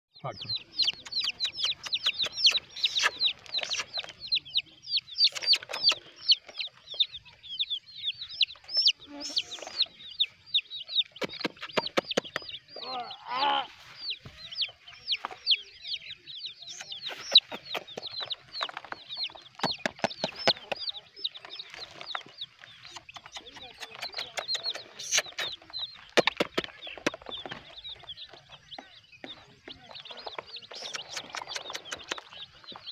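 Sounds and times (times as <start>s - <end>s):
chicks peeping: 0.2s - 32.9s.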